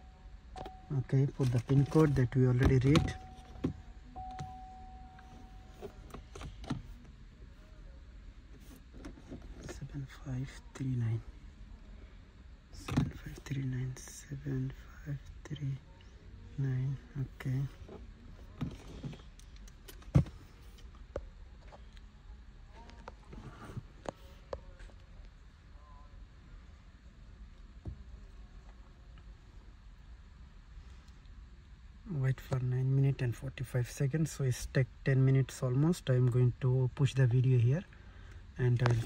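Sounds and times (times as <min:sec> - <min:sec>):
background hum: 0:00.0 - 0:39.0
faint steady tone: 0:00.0 - 0:39.0.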